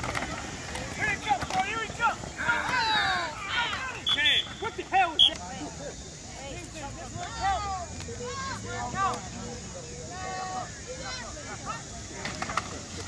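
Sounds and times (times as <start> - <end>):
children and adults shouting: 1.0 - 5.4, 7.2 - 11.9.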